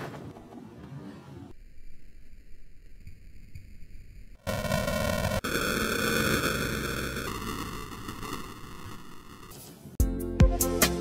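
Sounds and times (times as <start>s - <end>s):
static-like electronic noise: 1.5s - 10.0s.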